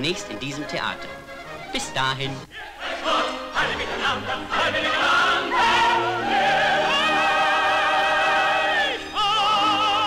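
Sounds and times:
choir singing with vibrato: 2.5 - 10.0.

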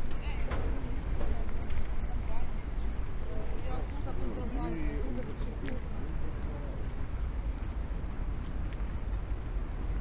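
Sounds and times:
footsteps on pavement: 0.0 - 10.0
indistinct voices of passers-by: 0.0 - 10.0
wind rumble on microphone: 0.0 - 10.0.

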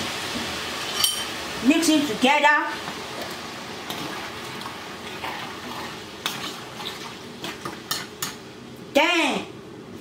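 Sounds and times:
sauce sizzling: 0.0 - 8.6.

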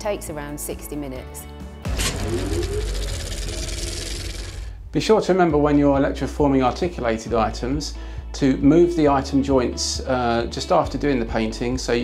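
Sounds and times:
low bass: 1.8 - 12.0.

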